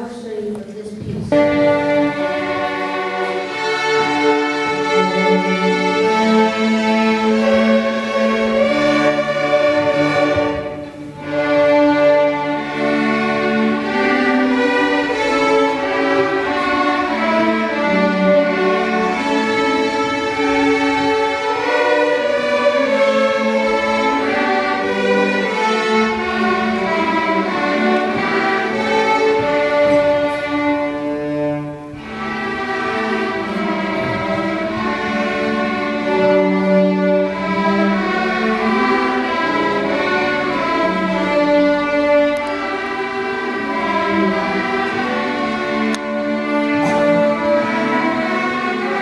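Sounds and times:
string orchestra playing slow piece: 0.0 - 49.0.

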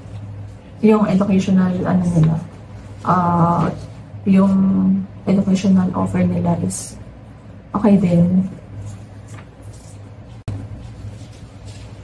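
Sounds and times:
low background hum: 0.0 - 12.0
person speaking: 0.1 - 10.4.

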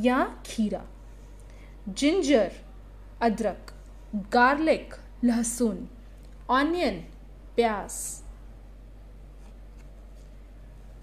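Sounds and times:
steady low hum: 0.0 - 11.0
cardboard page turning: 9.4 - 10.4.

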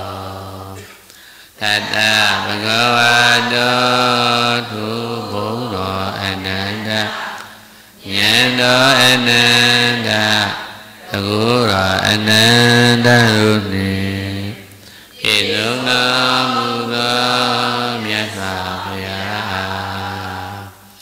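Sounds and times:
man chanting: 0.0 - 0.9, 1.6 - 7.4, 8.0 - 20.8.

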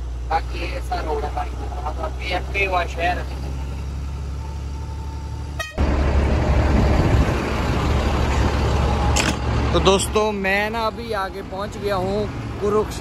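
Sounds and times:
street traffic noise: 0.0 - 13.0
truck engine running: 0.0 - 13.0.

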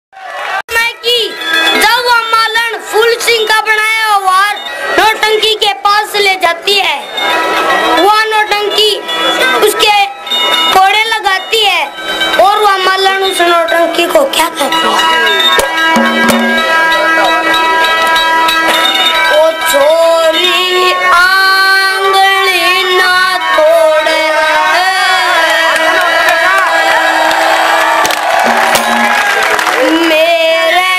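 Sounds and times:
sharp knock: 15.6 - 16.7
held chord on reed instrument: 15.8 - 18.8
boy singing into microphone: 19.3 - 26.7, 29.8 - 30.9.

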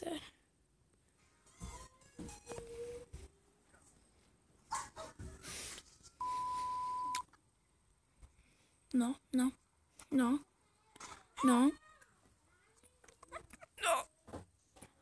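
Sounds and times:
steady high beep: 6.2 - 7.2.

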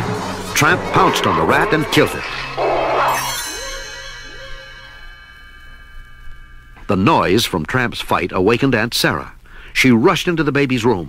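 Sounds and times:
music: 0.0 - 7.1.

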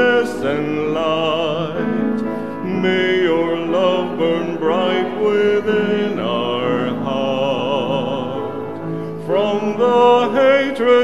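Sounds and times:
church choir singing a hymn: 0.0 - 11.0.

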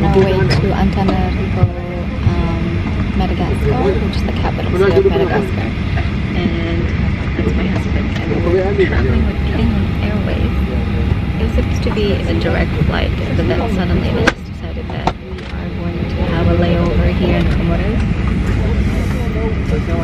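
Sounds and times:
person talking: 0.0 - 18.0
airliner cabin rumble: 0.0 - 20.0.

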